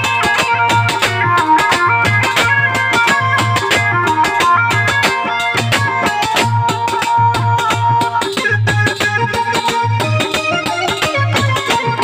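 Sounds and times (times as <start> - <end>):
hand drum fast rhythm: 0.0 - 12.0
harmonium reedy melody: 0.0 - 12.0.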